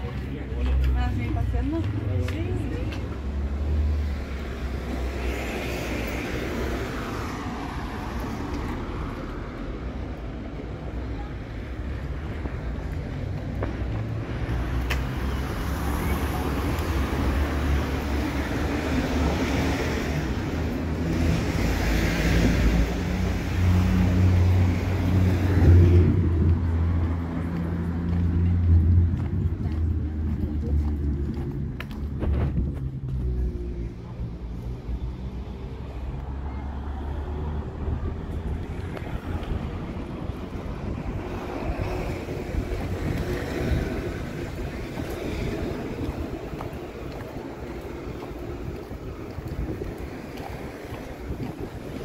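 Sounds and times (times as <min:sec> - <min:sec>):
cars passing: 0:00.0 - 0:52.0
steady low rumble: 0:25.0 - 0:35.0.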